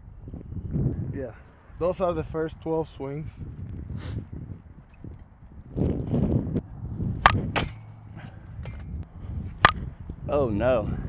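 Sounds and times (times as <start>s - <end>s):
bat cracking ball: 7.2s - 9.9s.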